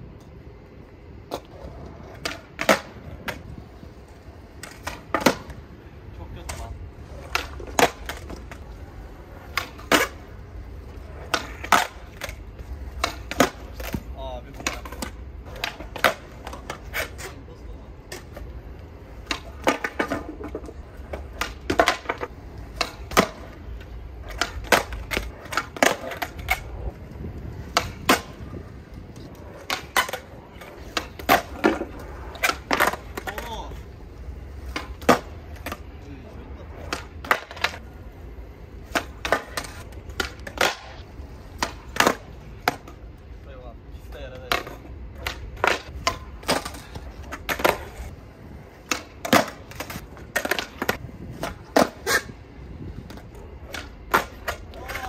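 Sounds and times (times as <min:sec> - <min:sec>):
skateboard wheels rolling: 0:00.0 - 0:55.0
skateboard deck clacks: 0:01.2 - 0:17.4, 0:18.0 - 0:43.3, 0:44.2 - 0:55.0.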